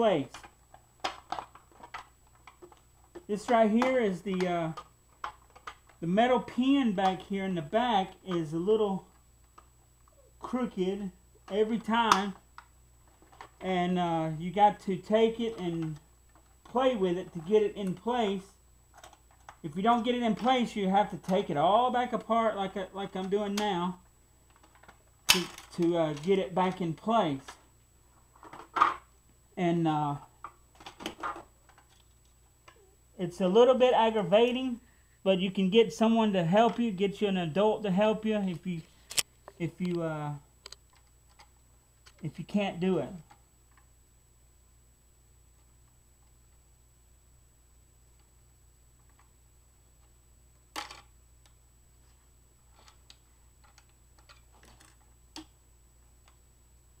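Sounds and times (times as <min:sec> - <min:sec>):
plastic parts clicking and knocking: 0:00.3 - 0:06.0, 0:11.5 - 0:13.6, 0:18.9 - 0:19.6, 0:24.5 - 0:26.8, 0:28.4 - 0:29.1, 0:30.4 - 0:32.8, 0:40.6 - 0:42.2, 0:50.7 - 0:51.6, 0:52.7 - 0:55.6.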